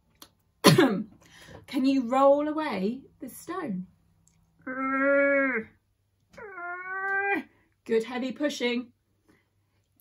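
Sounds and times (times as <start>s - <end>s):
woman groaning with effort: 4.6s - 5.8s.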